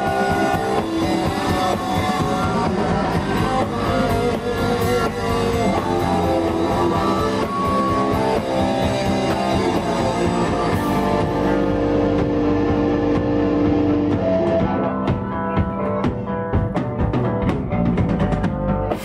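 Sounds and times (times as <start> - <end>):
electric guitars ringing: 0.0 - 16.7
punk rock band playing: 0.0 - 19.0.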